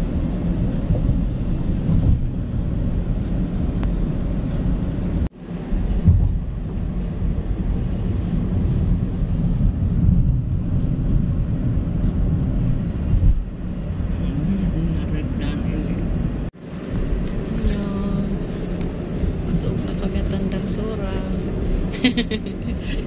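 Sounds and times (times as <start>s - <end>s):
car cabin road rumble: 0.0s - 23.0s.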